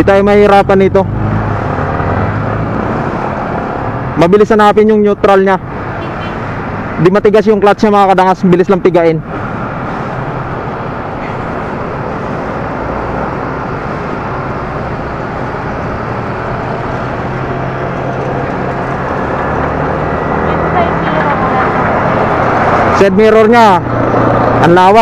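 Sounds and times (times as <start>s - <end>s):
wind rushing over microphone: 9.1s - 25.0s.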